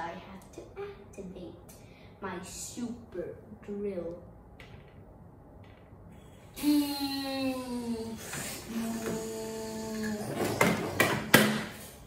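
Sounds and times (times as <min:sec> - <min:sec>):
steady pitched hum: 0:00.0 - 0:12.0.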